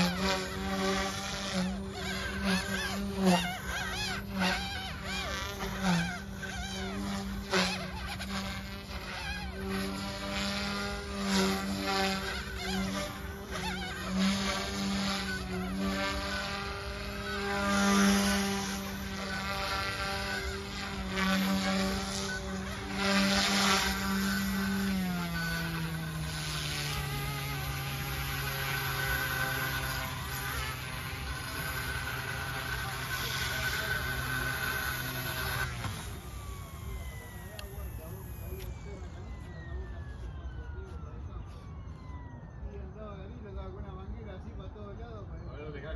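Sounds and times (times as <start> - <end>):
rc helicopter buzzing: 0.0 - 44.7.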